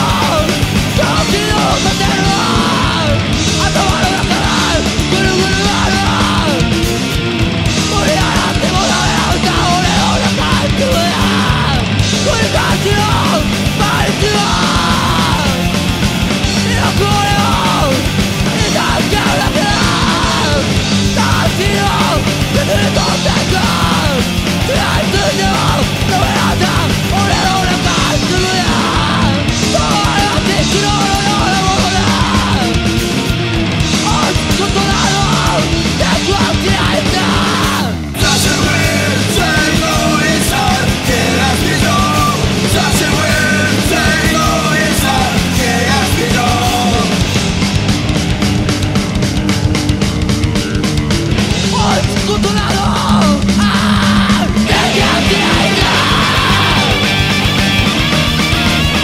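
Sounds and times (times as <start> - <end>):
bass and drums: 0.0 - 59.0
distorted guitars: 0.0 - 59.0
hardcore punk music: 0.0 - 59.0
yelled vocals: 0.0 - 59.0.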